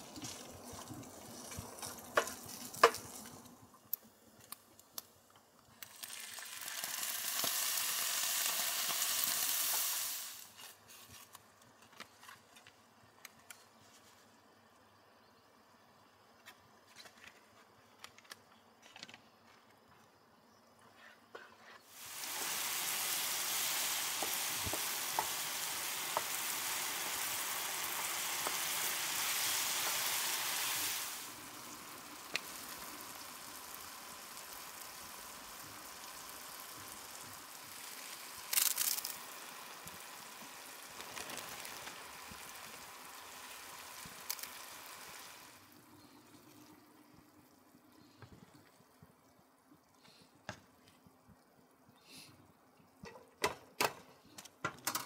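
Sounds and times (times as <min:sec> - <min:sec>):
meat sizzling in a skillet: 0:05.8 - 0:10.6, 0:21.9 - 0:45.8
rustle: 0:08.6 - 0:14.9.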